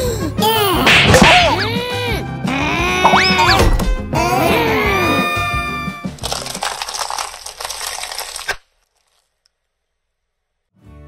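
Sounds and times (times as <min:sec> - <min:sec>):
gliding cartoon tones: 0:02.8 - 0:03.7
cones and candy crunching: 0:06.1 - 0:09.4.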